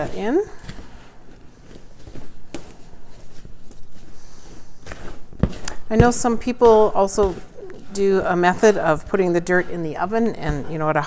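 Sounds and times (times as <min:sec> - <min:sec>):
hand rustling potting mix: 0:00.0 - 0:11.0.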